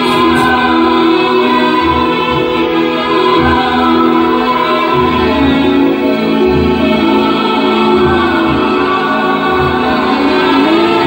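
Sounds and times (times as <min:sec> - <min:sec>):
voices singing together: 0:00.0 - 0:11.0.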